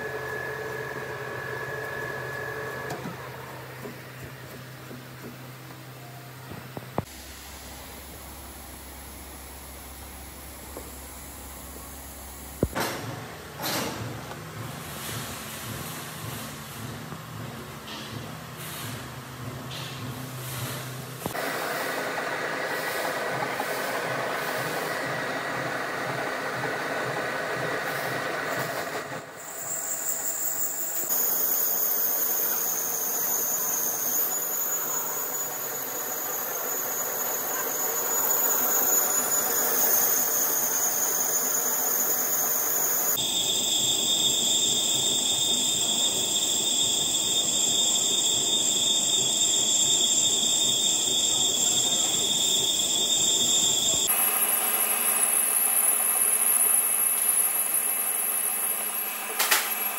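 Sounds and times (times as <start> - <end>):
metal lathe machining: 0.0 - 4.5, 21.3 - 59.9.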